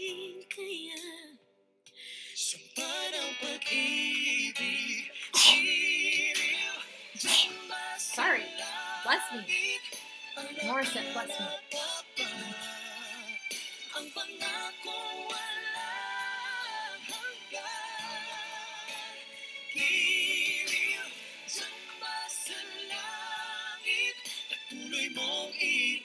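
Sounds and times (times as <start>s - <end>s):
woman and man singing duet: 0.0s - 1.3s, 2.1s - 19.2s, 19.8s - 26.0s
musical accompaniment: 2.8s - 26.0s.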